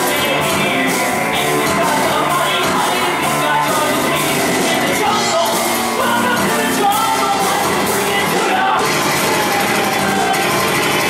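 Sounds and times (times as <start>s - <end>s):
live rock band playing loudly: 0.0s - 11.0s.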